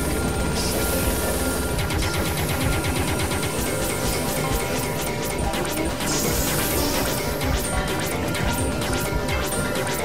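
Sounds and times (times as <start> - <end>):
noisy synthesizer drone: 0.0 - 10.0
steady synthesizer tones: 0.0 - 10.0
rapid clicking pulses: 0.1 - 10.0.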